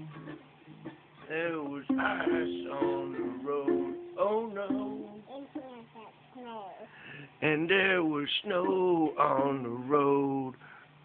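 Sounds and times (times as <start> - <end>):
person singing: 1.3 - 6.1, 7.5 - 10.6
ukulele notes: 1.6 - 5.8, 8.6 - 9.9.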